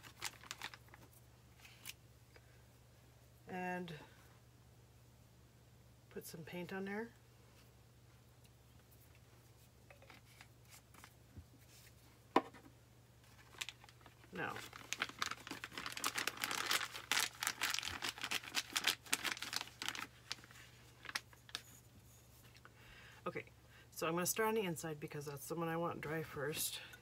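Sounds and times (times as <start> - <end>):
plastic bag crinkling: 0.0 - 1.9, 13.2 - 21.7.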